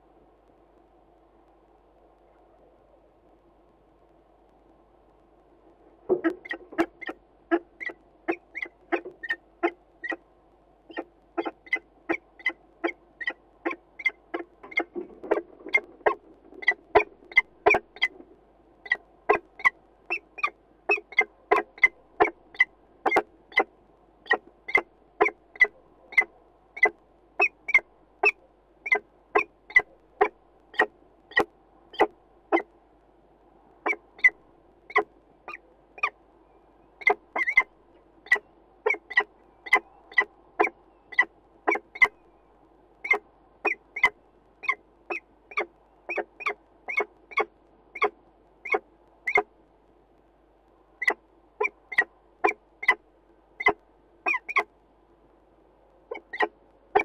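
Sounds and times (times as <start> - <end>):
faint steady hum: 0.0 - 57.0
bird calling: 6.1 - 10.2, 10.9 - 18.2, 18.8 - 23.7, 24.3 - 32.7, 33.8 - 42.4, 43.0 - 49.5, 51.0 - 53.0, 53.6 - 54.7, 56.1 - 57.0.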